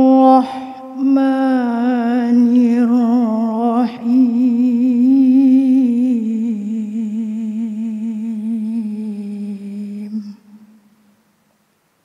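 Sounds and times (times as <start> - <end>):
person reciting melodically: 0.0 - 10.8.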